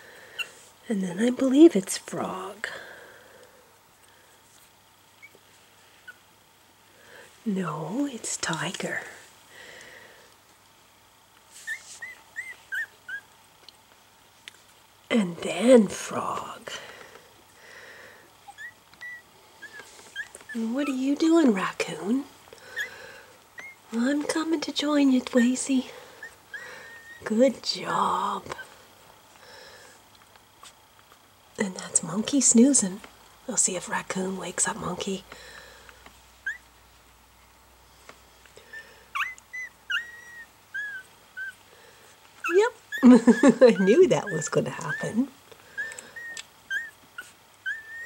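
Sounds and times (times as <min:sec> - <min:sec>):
puppies squeaking: 0:11.6 - 0:13.3, 0:18.4 - 0:21.1, 0:22.7 - 0:23.9, 0:26.2 - 0:27.2, 0:36.4 - 0:36.7, 0:38.7 - 0:41.6, 0:42.4 - 0:48.0.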